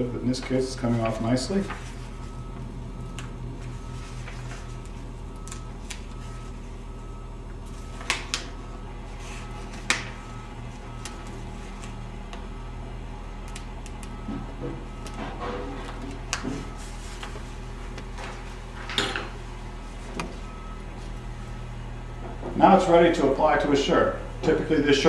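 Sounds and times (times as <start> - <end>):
steady low hum: 0.0 - 25.0
paper peeling crackles: 0.8 - 2.4, 3.6 - 6.8, 7.6 - 12.0.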